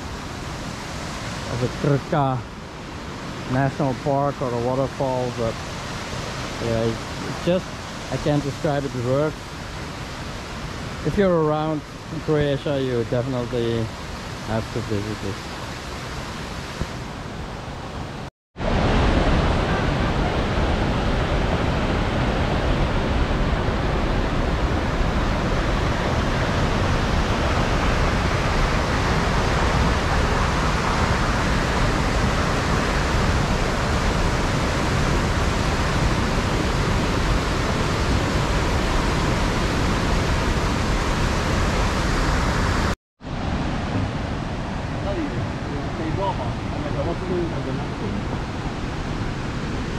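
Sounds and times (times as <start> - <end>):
cascading river water rushing: 0.0 - 49.9
stream rippling: 0.0 - 49.9.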